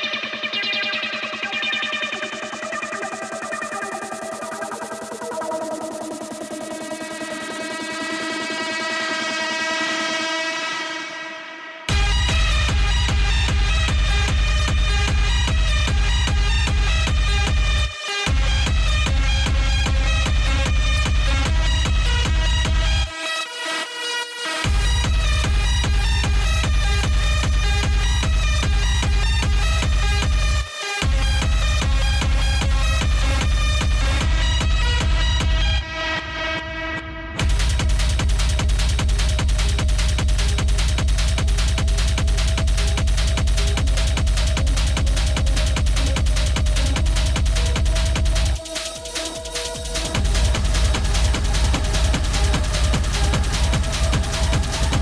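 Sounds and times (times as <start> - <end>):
fast low pulsing: 11.9 - 23.1, 24.6 - 55.0
heavy kick drum beat: 11.9 - 23.1, 24.6 - 35.9, 37.3 - 55.0.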